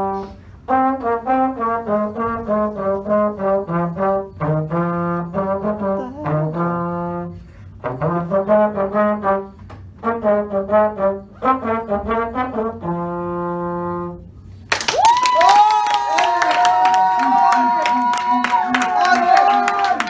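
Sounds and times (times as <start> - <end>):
slide trombone playing: 0.0 - 14.5.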